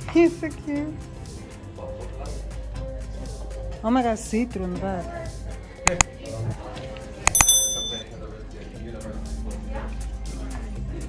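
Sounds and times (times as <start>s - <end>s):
mouse clicks: 5.9s - 6.1s, 7.3s - 8.0s
bright bell ding: 7.3s - 8.0s.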